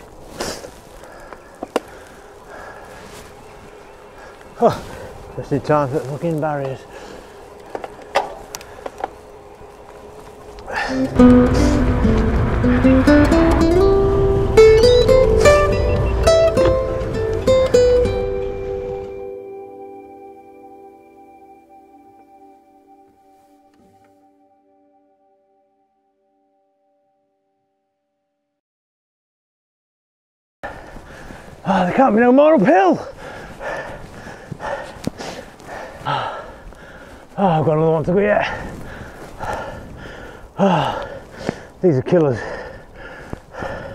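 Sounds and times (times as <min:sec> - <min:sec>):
bicycle rolling on tarmac: 0:00.0 - 0:18.3, 0:30.7 - 0:43.9
person breathing heavily: 0:00.3 - 0:05.4, 0:06.8 - 0:07.8, 0:08.4 - 0:09.4, 0:10.6 - 0:11.9, 0:30.6 - 0:31.8, 0:33.0 - 0:37.4, 0:38.4 - 0:43.9
faint hum: 0:01.0 - 0:17.6
clicks and knocks from bike: 0:01.3 - 0:01.9, 0:07.6 - 0:09.2.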